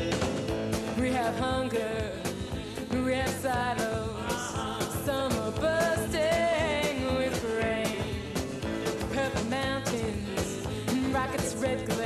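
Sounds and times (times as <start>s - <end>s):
band playing folk song: 0.0s - 12.0s.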